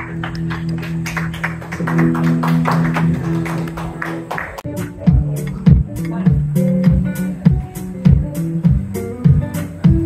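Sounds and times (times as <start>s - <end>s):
solo blues guitar: 0.0s - 10.0s.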